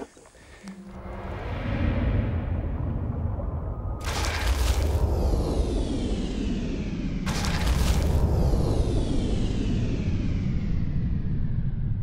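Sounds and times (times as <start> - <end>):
deep steady rumble: 0.0 - 12.0.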